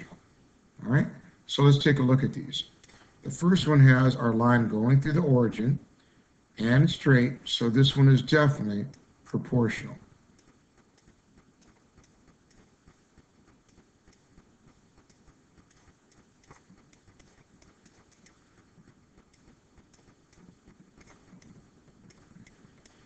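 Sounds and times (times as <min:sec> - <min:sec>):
stylus ticking on pen tablet: 0:08.2 - 0:09.1, 0:09.8 - 0:23.0.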